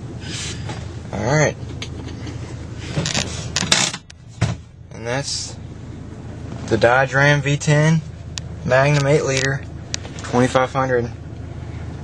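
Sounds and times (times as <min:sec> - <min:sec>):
engine idling hum: 0:00.0 - 0:12.0.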